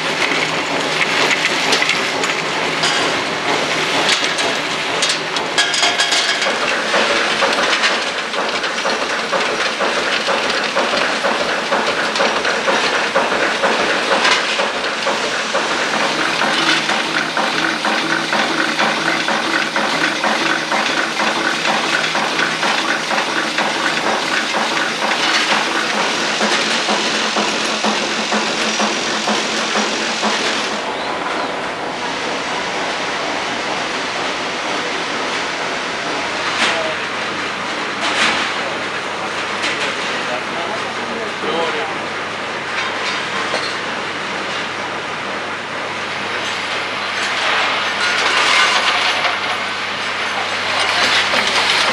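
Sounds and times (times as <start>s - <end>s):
machinery metallic rattling: 0.0s - 37.0s, 46.5s - 51.9s
machine hiss: 13.0s - 35.4s.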